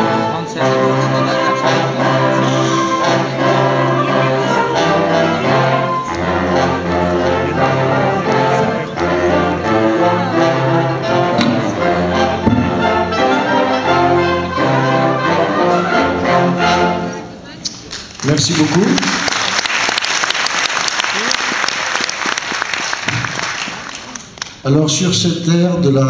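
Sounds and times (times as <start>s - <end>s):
wind band of brass and saxophones: 0.0s - 17.4s.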